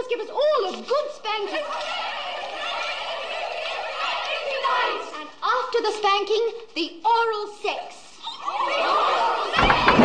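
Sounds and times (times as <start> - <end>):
women squealing and chattering: 8.2 - 9.7.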